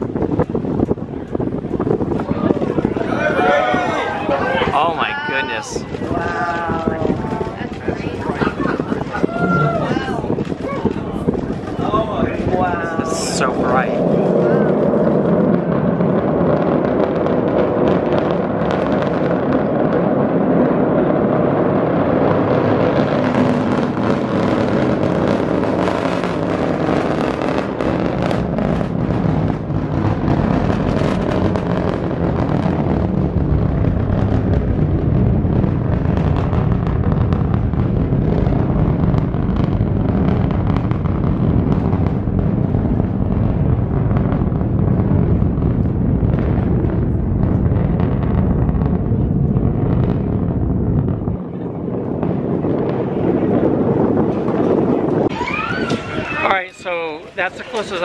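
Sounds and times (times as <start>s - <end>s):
rocket engine crackling roar: 0.0s - 58.0s.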